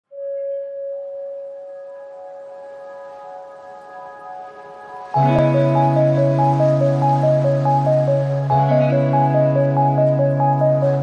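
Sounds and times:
sustained bell-like tones: 0.2 - 11.0.

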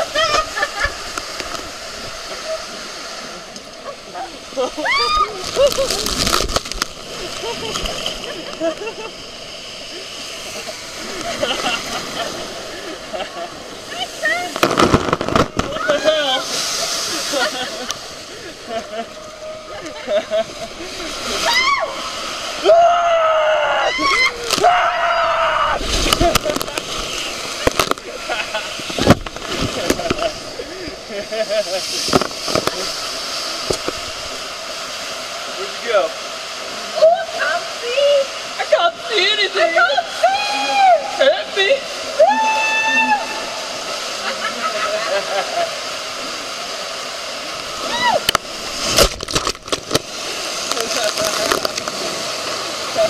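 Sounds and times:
water rushing down a slide: 0.0 - 53.0
person yelling: 4.8 - 5.4, 22.6 - 25.8, 39.6 - 43.6
person whooping: 4.8 - 6.0, 21.4 - 25.9, 42.2 - 43.7, 47.8 - 48.3
loud choppy splashing: 14.0 - 17.8.

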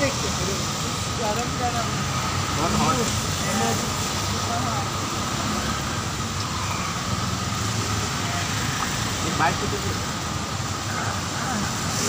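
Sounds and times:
rain: 0.0 - 12.0
traffic engine rumble: 0.0 - 12.0
tyres hissing on wet road: 0.0 - 12.0.

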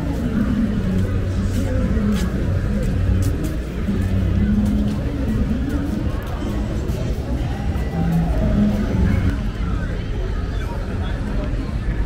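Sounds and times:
music: 0.0 - 12.0
people's voices: 0.0 - 12.0
traffic engine rumble: 0.0 - 12.0.

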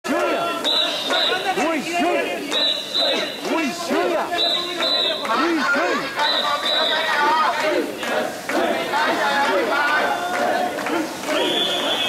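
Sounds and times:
group chanting rhythmic call: 0.0 - 12.0
short whistle blasts: 0.6 - 1.4, 2.5 - 3.5, 4.4 - 5.2, 11.4 - 12.0.

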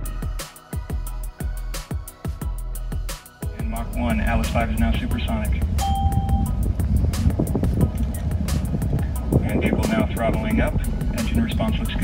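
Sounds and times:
music with steady beat: 0.0 - 12.0
deep rocket rumble: 3.4 - 12.0
short steady beep: 5.8 - 6.6.

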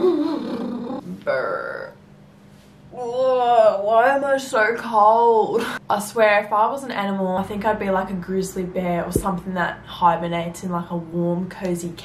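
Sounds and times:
woman making shivering sounds: 0.0 - 1.9.

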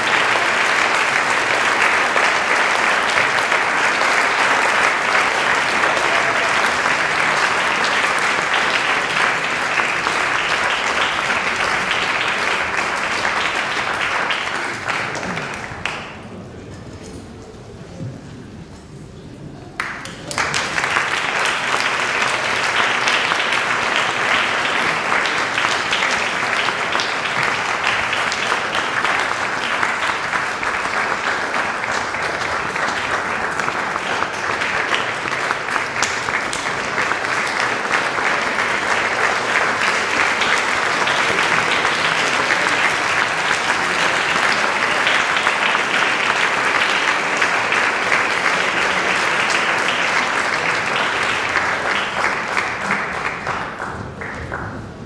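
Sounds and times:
audience applauding: 0.0 - 16.6, 19.6 - 55.0.

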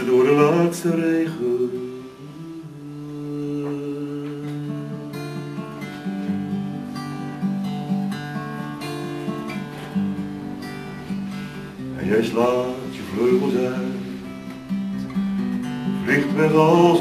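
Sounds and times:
acoustic guitar picking: 0.0 - 17.0.

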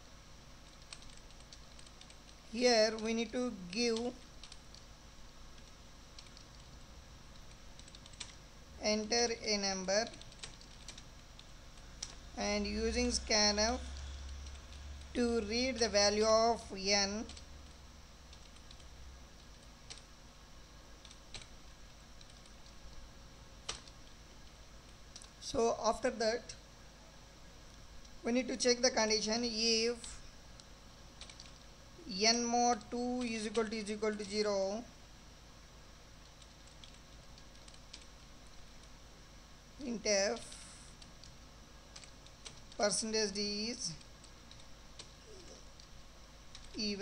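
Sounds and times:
faint keyboard keystrokes: 0.6 - 2.4, 21.0 - 23.0, 30.0 - 31.7
faint computer keyboard typing: 0.6 - 4.9, 5.5 - 20.1, 21.0 - 25.4, 27.7 - 31.8, 32.4 - 34.9, 36.2 - 39.0, 40.3 - 46.9.

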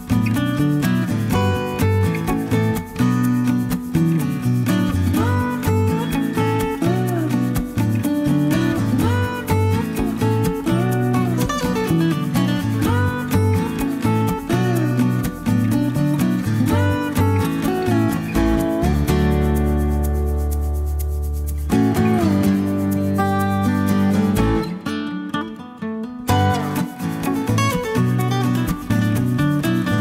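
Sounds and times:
upbeat acoustic guitar music: 0.0 - 30.0.

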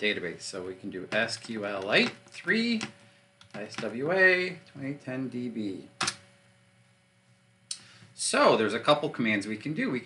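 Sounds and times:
faint steady hum: 0.0 - 10.0
keyboard keystroke: 6.0 - 6.2
person breathing: 7.8 - 8.2.

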